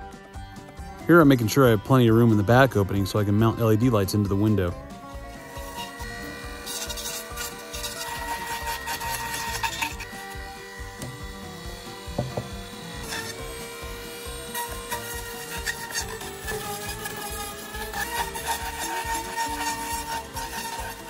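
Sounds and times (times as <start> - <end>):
bit scraping foam: 0.2 - 21.0
rotary tool motor whine: 1.7 - 21.0.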